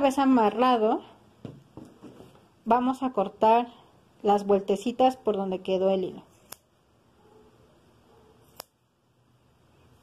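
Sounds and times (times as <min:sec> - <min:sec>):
scissors snipping yarn: 0:06.4 - 0:06.7, 0:08.4 - 0:08.8.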